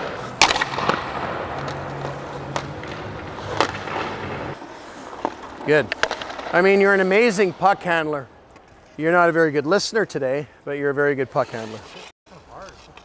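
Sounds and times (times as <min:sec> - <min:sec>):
hockey stick striking puck: 0:00.0 - 0:08.9
skates scraping ice: 0:00.0 - 0:10.0, 0:10.9 - 0:13.0.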